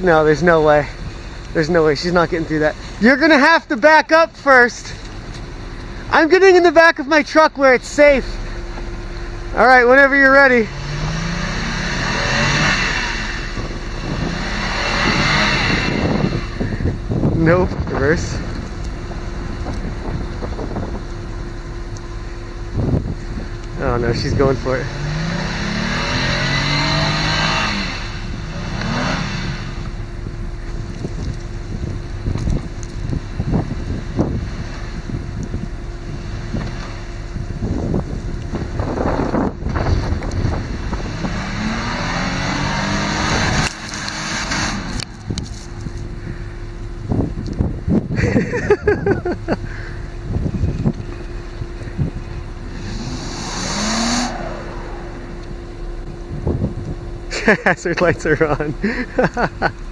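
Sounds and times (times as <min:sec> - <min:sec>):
engine revving: 0:00.0 - 0:59.9
tyres spinning in snow: 0:00.0 - 0:59.9.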